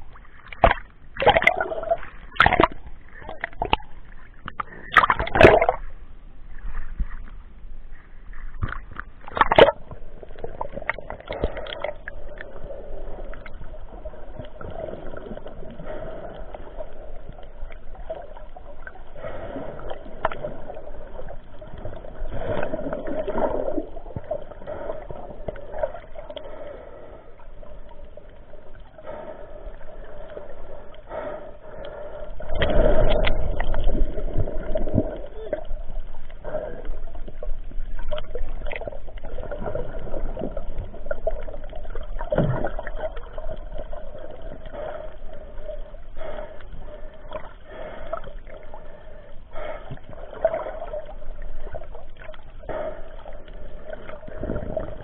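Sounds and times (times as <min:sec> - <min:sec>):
water sloshing and gurgling: 0:00.0 - 0:55.0
sharp water splashes: 0:00.4 - 0:02.8, 0:04.9 - 0:05.8, 0:08.6 - 0:09.9.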